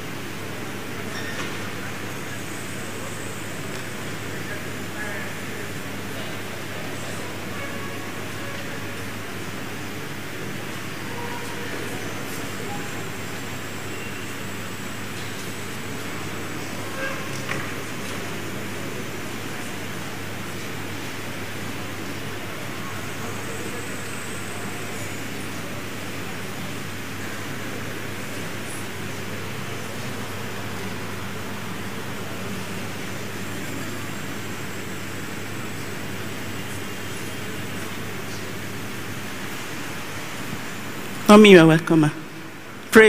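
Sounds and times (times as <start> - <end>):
hiss-like room noise: 0.0 - 43.0
large hall crowd noise: 0.0 - 43.0.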